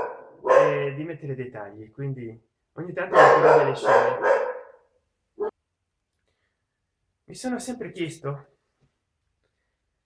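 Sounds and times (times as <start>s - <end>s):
man's drawn-out voice: 0.5s - 1.3s, 2.8s - 4.3s.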